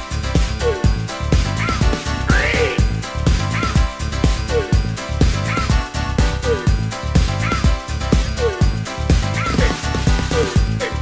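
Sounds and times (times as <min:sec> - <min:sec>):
dance-pop kick drum beat: 0:00.0 - 0:11.0.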